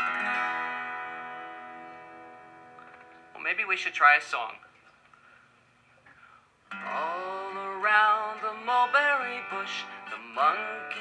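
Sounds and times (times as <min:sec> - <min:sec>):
acoustic guitar chord strummed: 0:00.0 - 0:03.7, 0:06.7 - 0:11.0.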